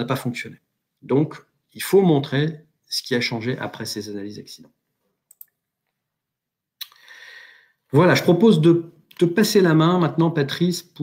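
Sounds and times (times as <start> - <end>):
faint short clicks: 5.3 - 5.6
sharp click: 5.3 - 5.6.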